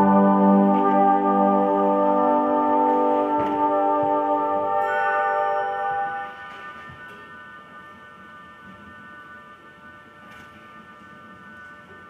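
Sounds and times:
brass band playing chords: 0.0s - 6.8s.

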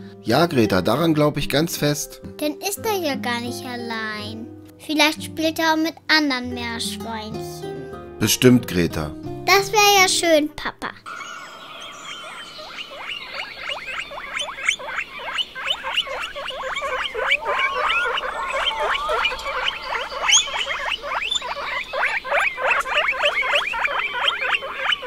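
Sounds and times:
guinea pigs squeaking: 11.1s - 25.0s.

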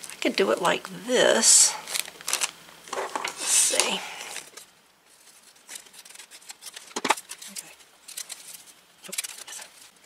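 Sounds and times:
paper rustling: 1.9s - 10.0s.

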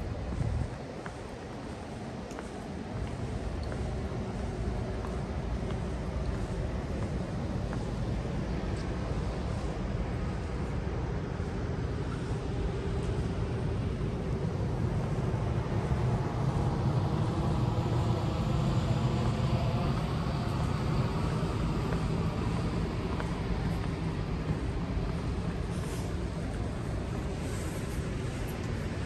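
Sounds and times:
faint whine: 0.0s - 29.0s
low rumble of airport noise: 0.0s - 29.0s.

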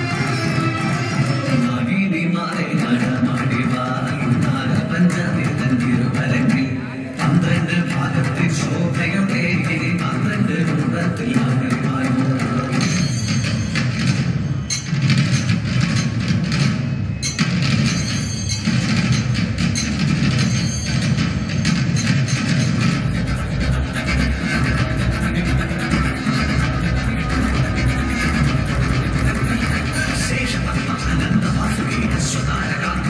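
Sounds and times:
dense group dance music: 0.0s - 33.0s
heavy bass: 0.0s - 33.0s.

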